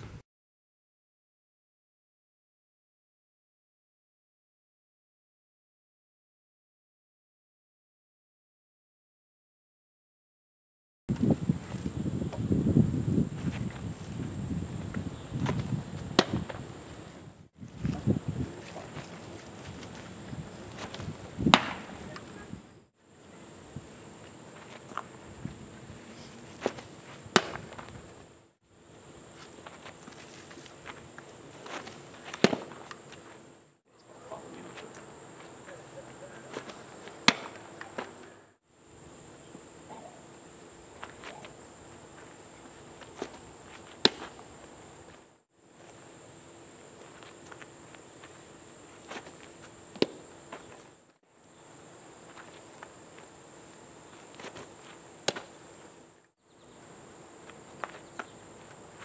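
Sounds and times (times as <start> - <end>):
baseball popping into mitt: 15.4 - 16.6, 20.8 - 22.3, 26.6 - 28.0, 31.6 - 33.1, 36.5 - 38.1, 44.0 - 44.4, 49.9 - 50.2, 54.4 - 55.5.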